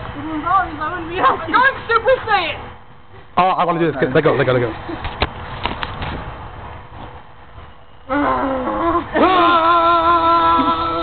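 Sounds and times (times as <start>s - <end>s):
faint outdoor background noise: 0.0s - 11.0s
person groaning: 8.1s - 11.0s.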